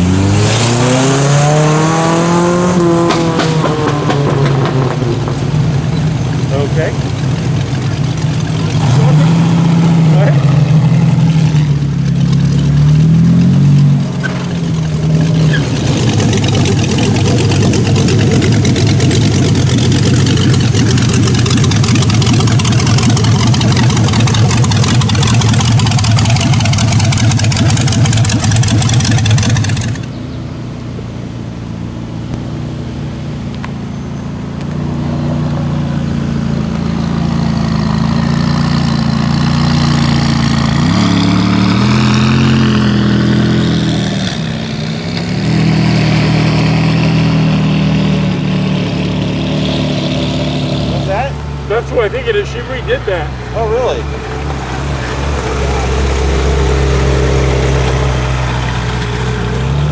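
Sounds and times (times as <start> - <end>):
hot rod engine droning: 0.0 - 59.9
sports car engine revving: 0.0 - 59.9
cars driving slowly past: 1.2 - 59.9.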